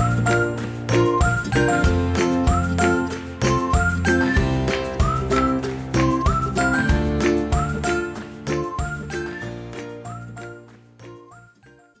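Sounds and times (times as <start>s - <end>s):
bass line: 0.0s - 10.5s
upward-sliding whistle-like notes: 0.0s - 10.6s.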